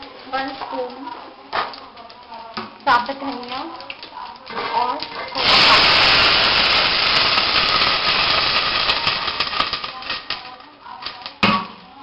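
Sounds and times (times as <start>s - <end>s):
water sizzling in hot oil: 0.0s - 11.4s
oil crackling and popping: 0.0s - 12.0s.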